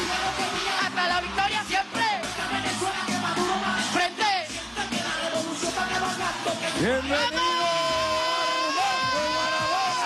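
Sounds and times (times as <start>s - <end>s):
crowd voices: 0.0s - 10.0s
long high shout: 7.2s - 10.0s.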